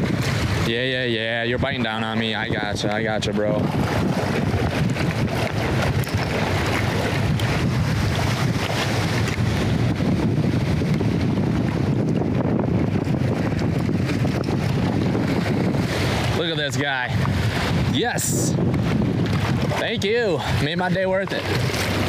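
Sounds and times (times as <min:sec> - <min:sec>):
waves washing against rocks: 0:00.0 - 0:22.0
wind buffeting microphone: 0:00.0 - 0:22.0.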